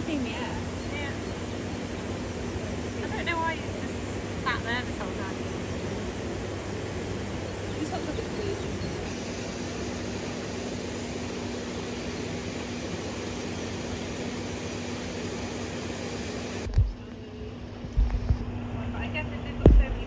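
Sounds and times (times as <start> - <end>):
low pump hum: 0.0 - 20.0.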